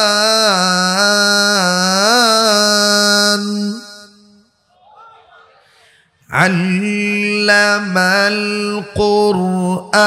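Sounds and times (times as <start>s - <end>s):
faint hall echo: 0.0s - 10.0s.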